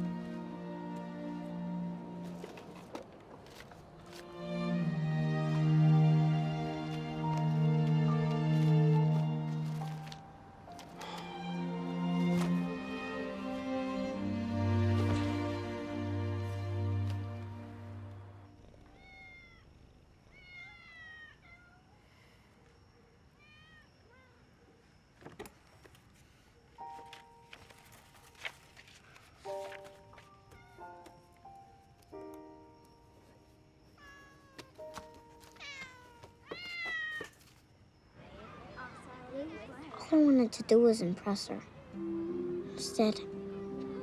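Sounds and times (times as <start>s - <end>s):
cat meowing: 18.8s - 19.6s, 20.3s - 21.8s, 34.0s - 34.8s, 35.6s - 37.3s.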